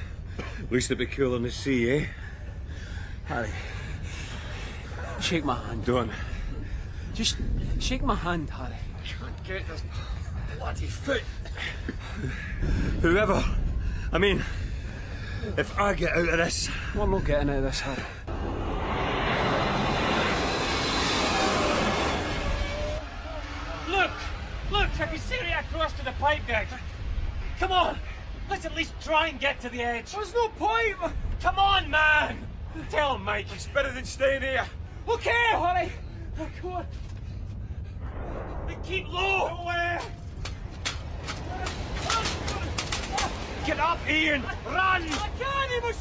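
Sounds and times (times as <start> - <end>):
large fire rushing: 0.0 - 46.0
low rumble: 0.0 - 46.0.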